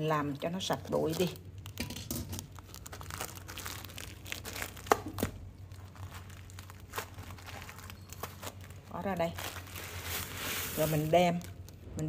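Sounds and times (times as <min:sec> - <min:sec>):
plastic bag crinkling: 0:00.8 - 0:11.9.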